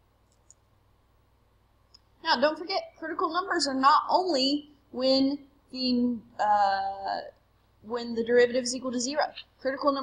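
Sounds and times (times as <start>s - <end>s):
faint low hum: 0.0s - 10.0s
small clicks: 0.2s - 0.6s.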